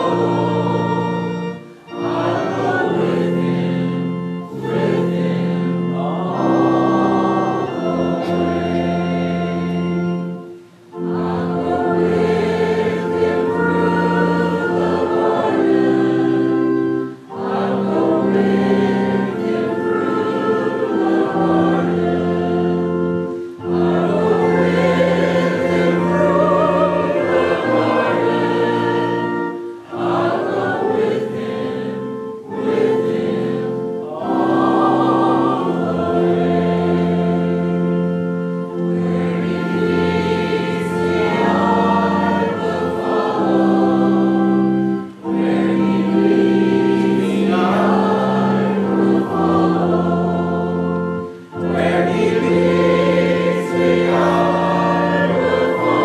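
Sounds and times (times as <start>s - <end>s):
choir singing a hymn: 0.0s - 56.0s
sustained keyboard accompaniment: 0.0s - 56.0s.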